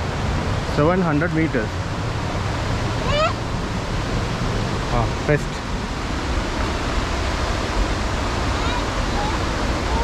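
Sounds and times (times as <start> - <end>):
rushing water: 0.0 - 10.0.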